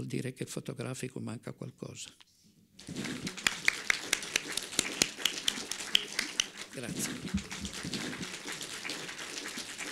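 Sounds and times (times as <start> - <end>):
audience applauding: 2.8 - 9.9.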